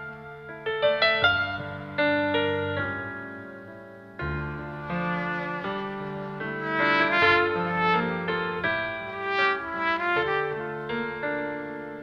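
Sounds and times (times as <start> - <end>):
trumpet playing slow melody: 4.7 - 11.6.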